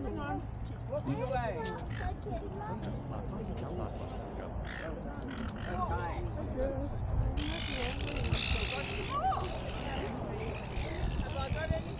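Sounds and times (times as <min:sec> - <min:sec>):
low crowd voices: 0:00.0 - 0:11.9.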